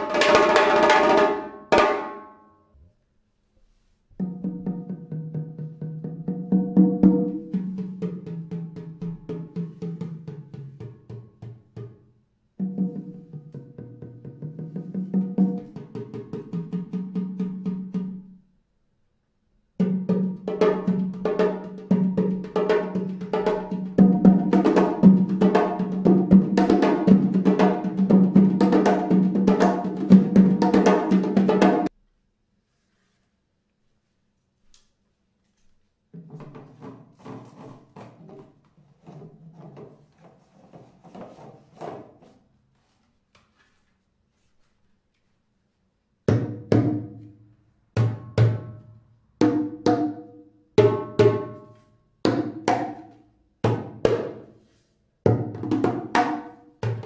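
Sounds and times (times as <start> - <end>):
drums played with sticks: 0.0 - 2.3, 4.2 - 18.3, 19.8 - 31.9, 48.0 - 48.8, 49.4 - 51.6, 55.3 - 57.0
fast hand drumming deep tone: 19.8 - 31.9.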